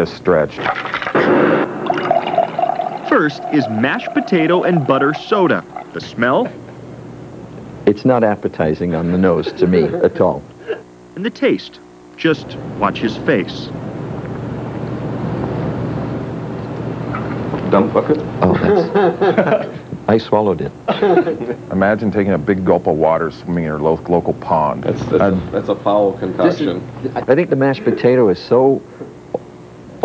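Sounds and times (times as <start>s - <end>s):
soda pouring into glass: 0.6s - 6.5s
low hum: 0.7s - 7.8s.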